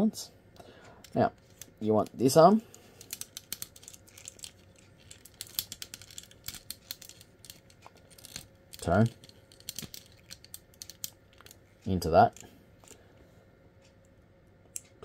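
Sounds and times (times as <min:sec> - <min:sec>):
plastic toy joints clicking: 0:03.0 - 0:11.6.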